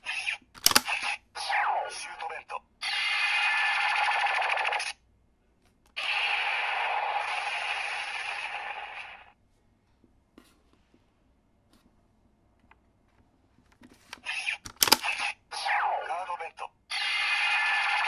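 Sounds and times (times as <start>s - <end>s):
toy voice calls: 0.0s - 4.9s, 14.2s - 18.0s
toy click: 0.6s - 1.1s, 14.6s - 15.2s
toy electronic sound effects: 2.8s - 5.0s, 6.0s - 9.4s, 14.2s - 16.3s, 16.9s - 18.0s.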